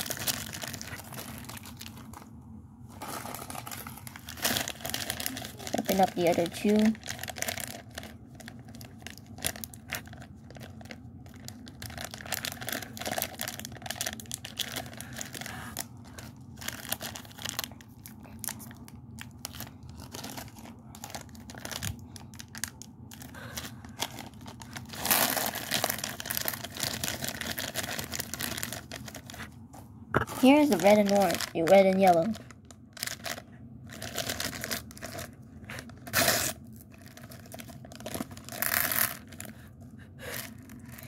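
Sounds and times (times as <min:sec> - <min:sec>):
plastic wrappers crinkling and tearing: 0:00.0 - 0:29.6, 0:30.2 - 0:41.0.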